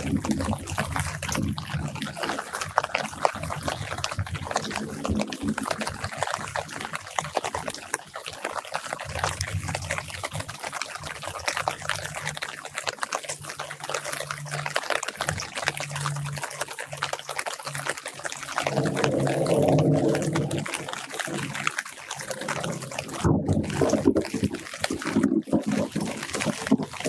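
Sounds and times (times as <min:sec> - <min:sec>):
rain pattering on leaves: 0:00.0 - 0:27.0
low rumble: 0:18.5 - 0:21.7.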